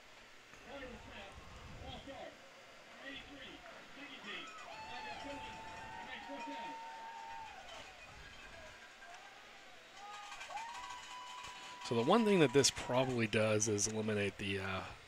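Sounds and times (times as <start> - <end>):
long steady tone: 0.0 - 15.0
distant voices: 0.2 - 15.0.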